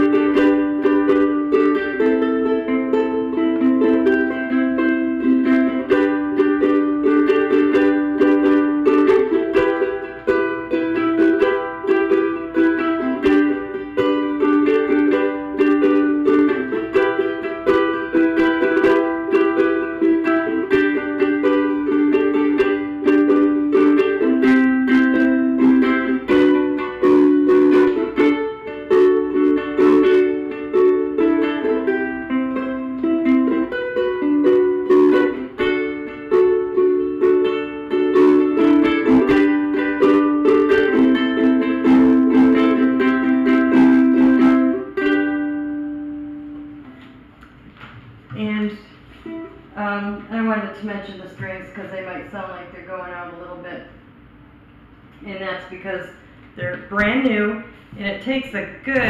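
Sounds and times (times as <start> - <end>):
ukulele strumming chords: 0.0 - 50.0.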